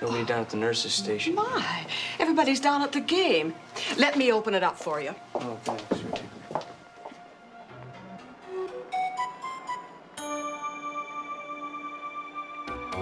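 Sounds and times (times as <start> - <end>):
held music chord: 7.3 - 13.0
bell and mallet notes: 10.2 - 13.0.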